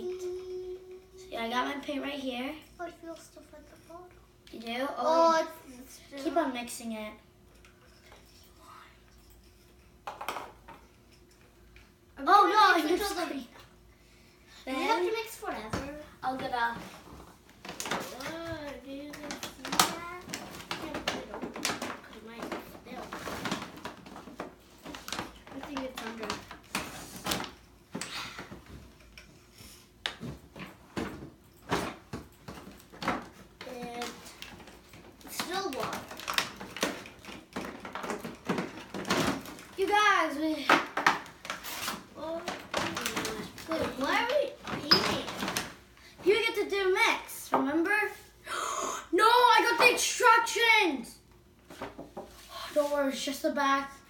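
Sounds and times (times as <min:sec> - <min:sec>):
young girls talking: 0:00.0 - 0:07.3, 0:12.2 - 0:13.7, 0:14.5 - 0:16.9, 0:18.0 - 0:23.2, 0:25.5 - 0:26.5, 0:33.6 - 0:34.4, 0:35.2 - 0:36.2, 0:39.7 - 0:41.0, 0:42.1 - 0:51.3, 0:52.5 - 0:54.0.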